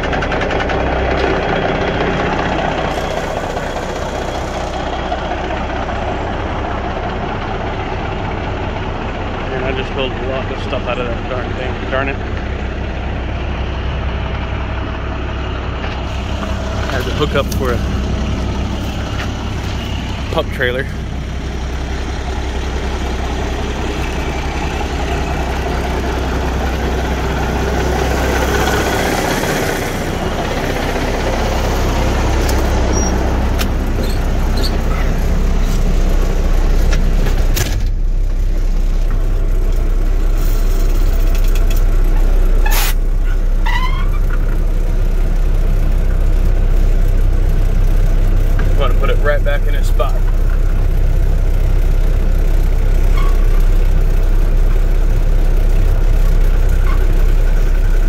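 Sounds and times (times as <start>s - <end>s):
diesel engine idling: 0.0s - 58.0s
short clicks and squeaks: 32.9s - 33.2s, 34.0s - 35.1s.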